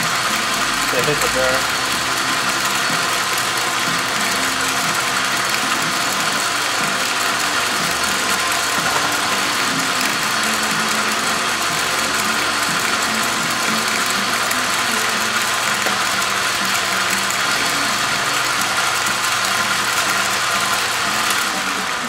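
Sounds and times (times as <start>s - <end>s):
metal lathe running: 0.0s - 22.0s.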